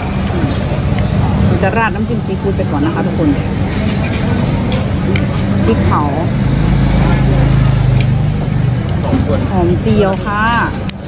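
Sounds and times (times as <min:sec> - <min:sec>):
road traffic: 0:00.0 - 0:11.0
vehicle engine rumbling: 0:00.0 - 0:11.0.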